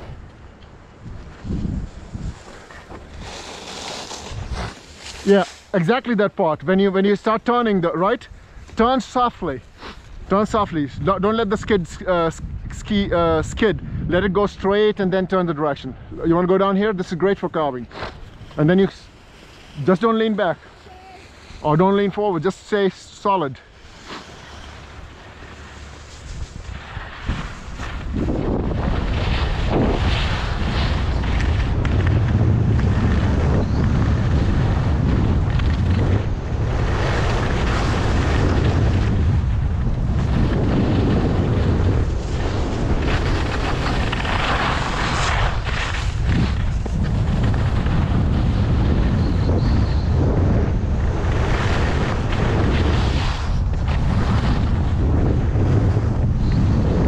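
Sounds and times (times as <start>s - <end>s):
wind rushing over microphone: 0.0s - 20.7s, 21.3s - 57.0s
skis carving on snow: 1.0s - 13.4s, 14.1s - 57.0s.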